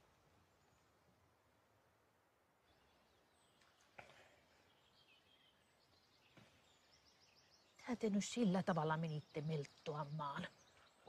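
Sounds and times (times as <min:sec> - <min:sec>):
quiet bird chirps: 0:00.0 - 0:11.0.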